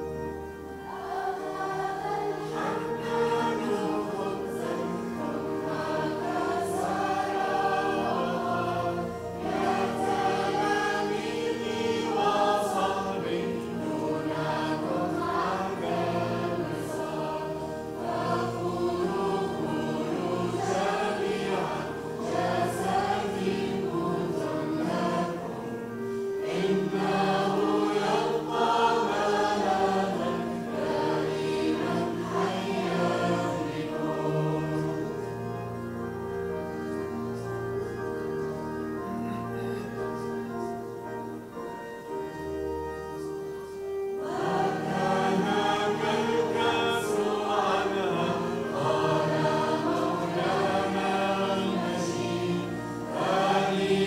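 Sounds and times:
held chords: 0.0 - 54.0
mixed choir singing a hymn: 0.0 - 54.0.

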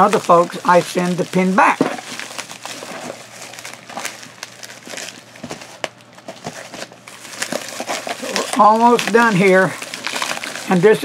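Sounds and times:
packing wrap crinkling: 0.0 - 11.0.

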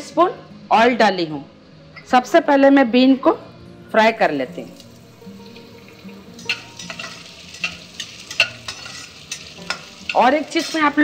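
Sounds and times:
beans frying in hot oil: 4.8 - 11.0
metal spatula scraping a pan: 6.4 - 11.0.

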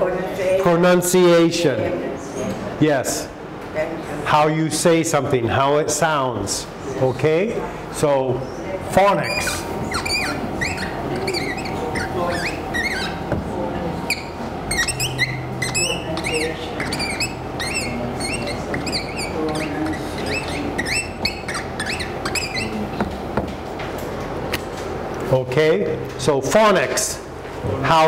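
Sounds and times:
marker squeaking on whiteboard: 8.4 - 23.7.

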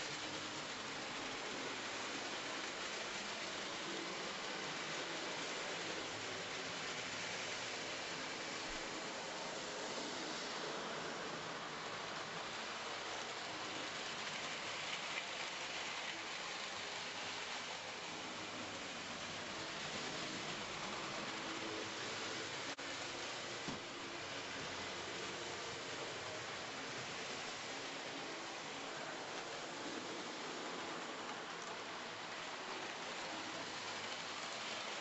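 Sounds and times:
model trains whirring on track: 0.0 - 35.0.

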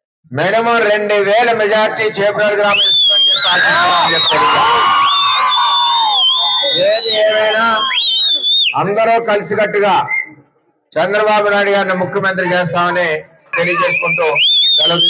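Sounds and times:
crowd shouting and cheering: 1.4 - 8.8, 11.7 - 15.0
loud shrill whistling: 2.7 - 8.8, 13.6 - 15.0.

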